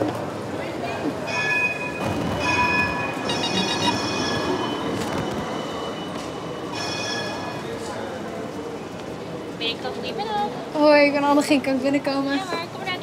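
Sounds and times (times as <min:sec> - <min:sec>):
intercom ringing tone: 0:01.6 - 0:06.2.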